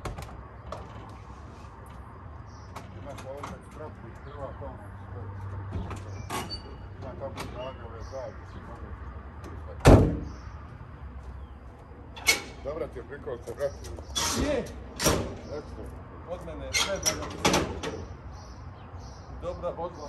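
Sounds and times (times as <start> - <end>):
car door slamming: 9.8 - 10.4.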